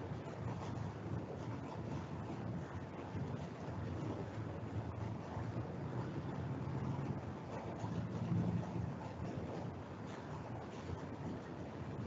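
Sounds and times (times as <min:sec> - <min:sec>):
wind on microphone rumble: 0:00.0 - 0:12.0.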